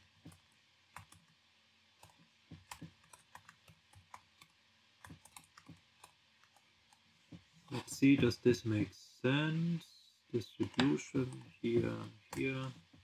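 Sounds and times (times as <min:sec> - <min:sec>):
computer keyboard typing: 0:00.2 - 0:01.4, 0:02.0 - 0:07.1.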